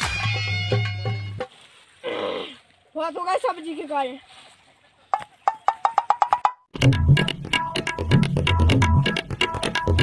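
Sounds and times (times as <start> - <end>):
music with tabla and percussion: 0.0 - 1.4, 5.5 - 10.0.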